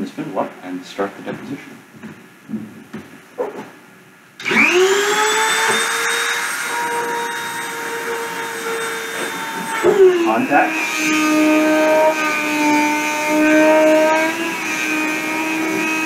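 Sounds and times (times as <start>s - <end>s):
rotary tool whine: 4.4s - 16.0s.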